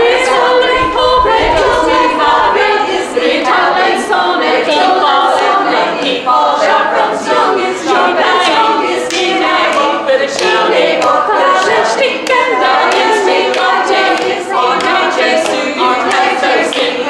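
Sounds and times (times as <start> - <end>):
women's choir singing: 0.0 - 17.0.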